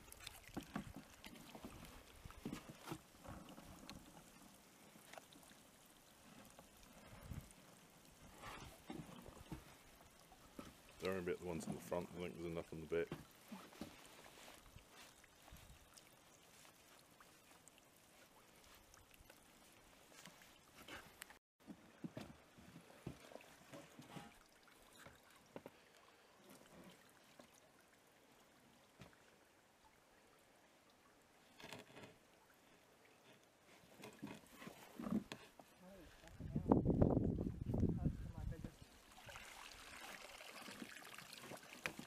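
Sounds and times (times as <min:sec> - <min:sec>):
water splashes: 0:00.0 - 0:21.4, 0:22.9 - 0:31.6, 0:32.2 - 0:42.0
water trickling and dripping: 0:00.0 - 0:21.4, 0:22.9 - 0:31.5, 0:32.2 - 0:42.0.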